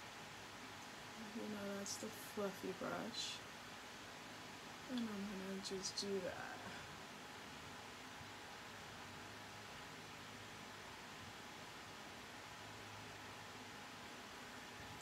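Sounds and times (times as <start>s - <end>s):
faint room tone hiss: 0.0s - 15.0s.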